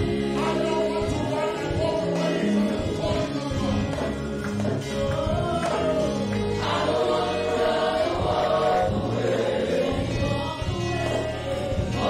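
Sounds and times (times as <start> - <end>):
group of voices singing: 0.0 - 12.0
keyboard playing: 0.0 - 12.0.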